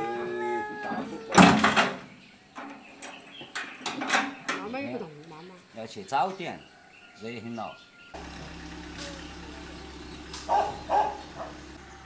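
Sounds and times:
small engine idling: 0:08.2 - 0:12.0.

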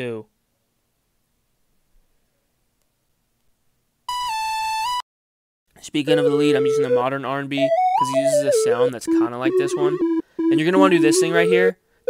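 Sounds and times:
bright synthesizer lead note: 0:07.7 - 0:11.7.

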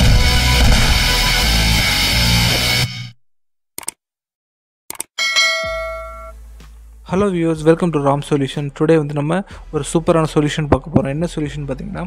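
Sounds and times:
bright bell ding: 0:05.2 - 0:06.4.

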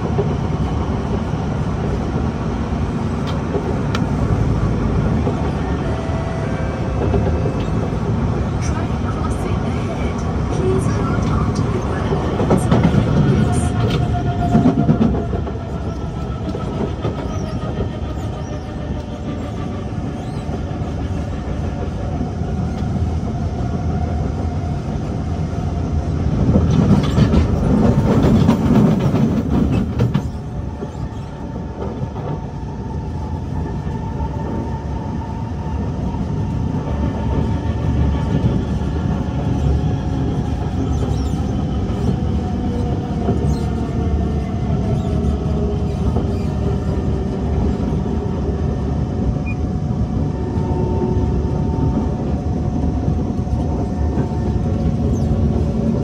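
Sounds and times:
train rumbling: 0:00.0 - 0:56.0
train wheels rolling on rails: 0:00.0 - 0:56.0.

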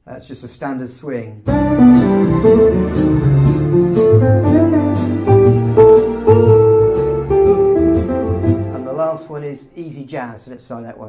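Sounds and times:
organ swing accompaniment: 0:01.5 - 0:09.1.

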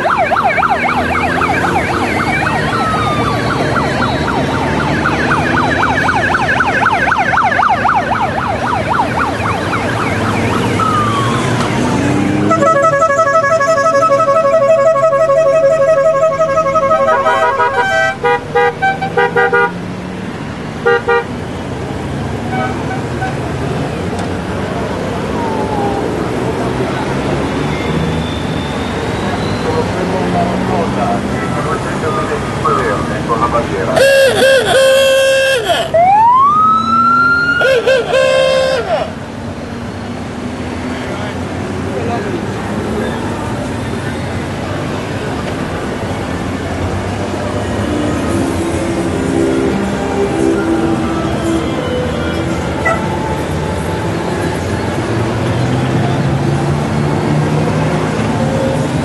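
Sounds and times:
vehicle siren wailing: 0:00.0 - 0:21.6, 0:24.6 - 0:59.0
motorcycle engines humming: 0:00.0 - 0:59.0
motorcycle horns honking: 0:12.4 - 0:19.8, 0:20.8 - 0:21.4, 0:22.5 - 0:23.4, 0:33.9 - 0:36.2, 0:37.6 - 0:39.2.

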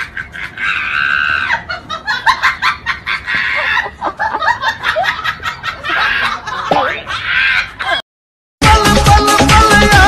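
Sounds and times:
high-pitched cries: 0:00.0 - 0:01.8, 0:05.8 - 0:08.0.

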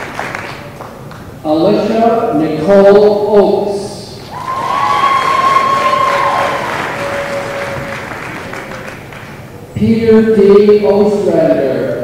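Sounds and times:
audience applause: 0:00.0 - 0:00.7, 0:04.4 - 0:09.4
held cheer: 0:04.3 - 0:09.0.

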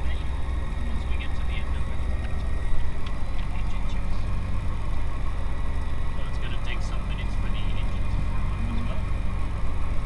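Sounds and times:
light aircraft engine droning: 0:00.0 - 0:10.0.

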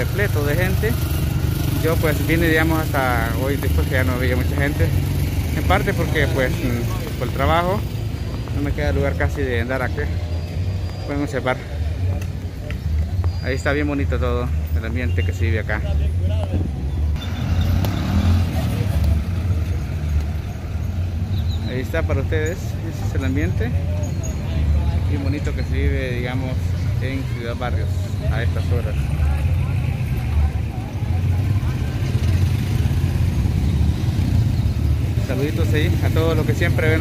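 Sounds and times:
people talking in background: 0:00.0 - 0:17.2, 0:17.8 - 0:37.0.

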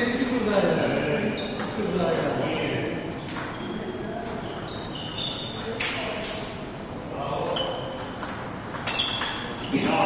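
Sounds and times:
table tennis ball pings: 0:03.2 - 0:06.4, 0:07.8 - 0:09.6.

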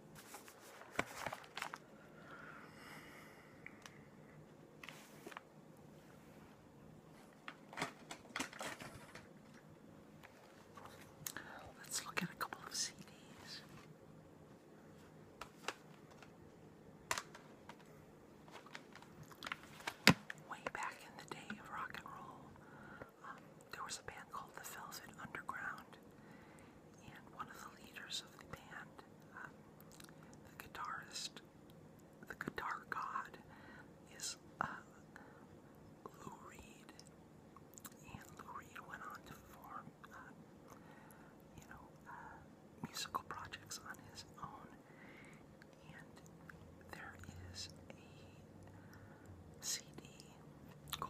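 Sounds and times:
person whispering: 0:10.9 - 0:13.8, 0:20.4 - 0:26.0, 0:27.0 - 0:29.6, 0:30.4 - 0:31.4, 0:32.2 - 0:33.5, 0:34.1 - 0:35.1, 0:36.0 - 0:37.1, 0:37.8 - 0:40.4, 0:41.5 - 0:44.8, 0:45.7 - 0:48.6, 0:49.6 - 0:51.0.

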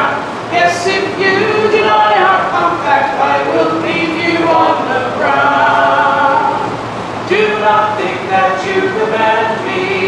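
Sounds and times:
a cappella singing: 0:00.0 - 0:10.0.

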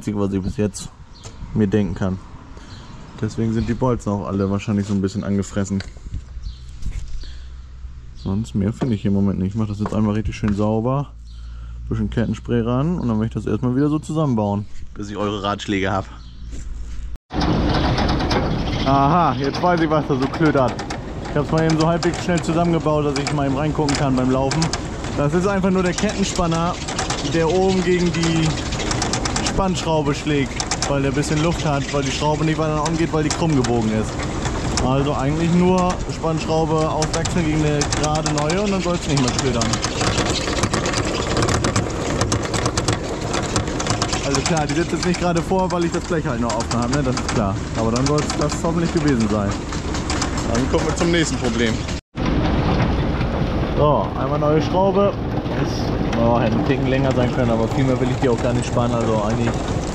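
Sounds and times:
low steady hum: 0:04.2 - 0:16.2
chain drive clattering: 0:17.4 - 0:52.0, 0:55.0 - 0:59.9.

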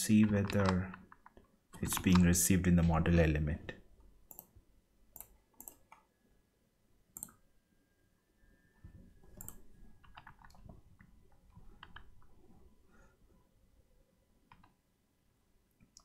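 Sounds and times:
keyboard and mouse clicks: 0:00.2 - 0:03.1, 0:04.2 - 0:06.1, 0:07.2 - 0:07.4, 0:09.3 - 0:12.3, 0:14.5 - 0:14.8, 0:15.8 - 0:16.0.

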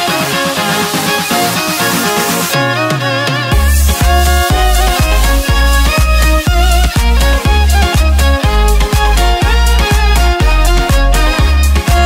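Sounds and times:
dance backing track: 0:00.0 - 0:12.0
violin playing melody: 0:00.0 - 0:12.0
kick drum: 0:03.5 - 0:12.0.

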